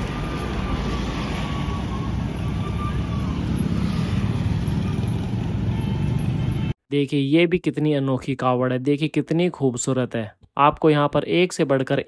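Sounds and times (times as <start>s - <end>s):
highway traffic rumble: 0.0s - 6.8s.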